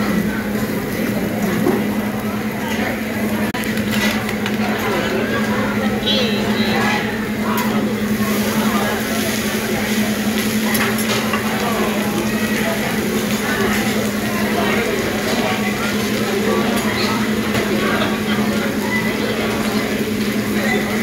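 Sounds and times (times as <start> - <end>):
restaurant chatter: 0.0 - 21.0.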